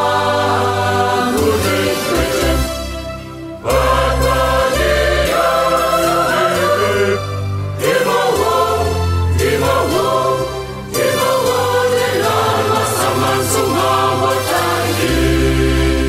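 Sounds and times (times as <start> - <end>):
church choir singing: 0.0 - 16.0.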